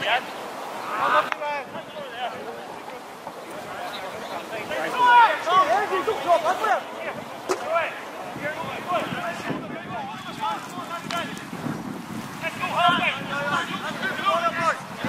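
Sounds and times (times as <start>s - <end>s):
distant shouted calls: 0.0s - 11.6s
wind on microphone: 5.6s - 15.0s.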